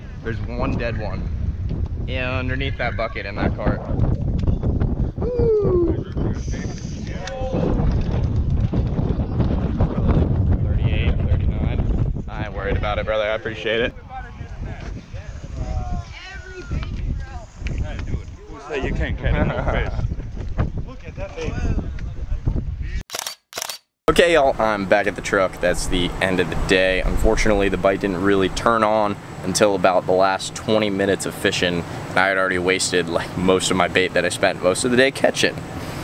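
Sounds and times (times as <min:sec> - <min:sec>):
wind buffeting microphone: 0:00.0 - 0:23.0, 0:24.2 - 0:29.3
voices talking: 0:02.1 - 0:04.0, 0:05.2 - 0:07.9, 0:24.1 - 0:35.6.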